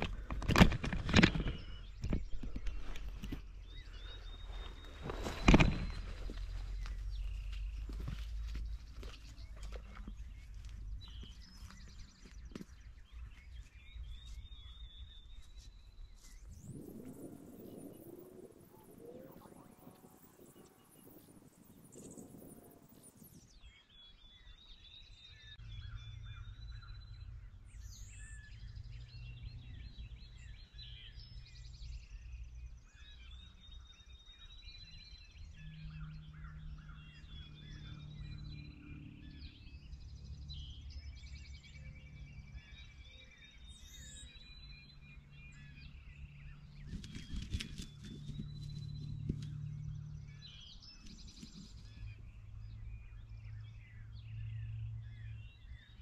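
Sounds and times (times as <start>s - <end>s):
songbirds chirping and singing: 0.0s - 56.0s.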